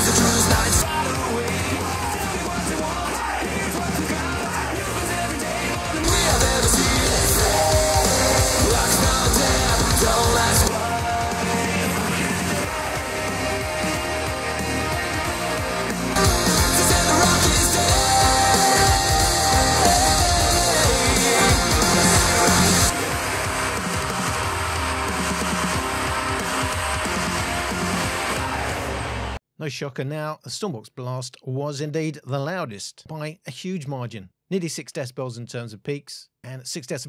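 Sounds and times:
hard rock through speakers: 0:00.0 - 0:29.4.

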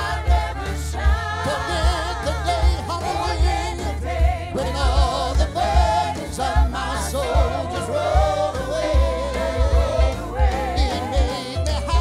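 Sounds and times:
band accompaniment: 0:00.0 - 0:12.0
church choir singing: 0:00.0 - 0:12.0
man singing with vibrato: 0:01.3 - 0:12.0.

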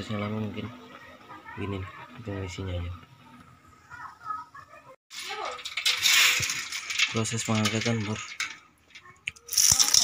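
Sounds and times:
clam shells rattling in a pan: 0:05.1 - 0:10.0.

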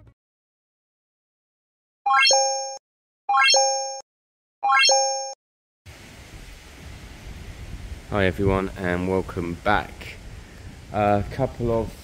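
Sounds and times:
wind on microphone: 0:06.2 - 0:12.0.

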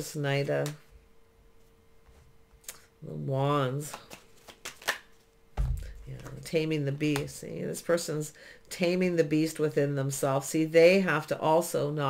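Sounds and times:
cards clicking and snapping: 0:03.9 - 0:05.2
soft low thump: 0:05.6 - 0:06.2.

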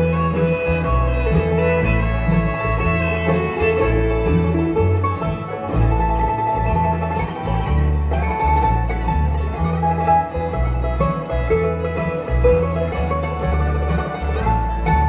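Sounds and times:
bluegrass band playing: 0:00.0 - 0:15.0
upright bass notes: 0:00.0 - 0:15.0.

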